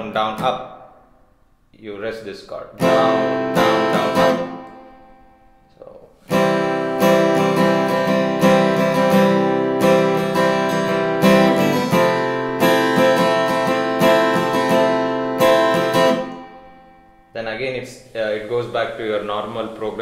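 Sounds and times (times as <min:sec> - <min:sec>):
acoustic guitar strumming: 0:02.8 - 0:17.7.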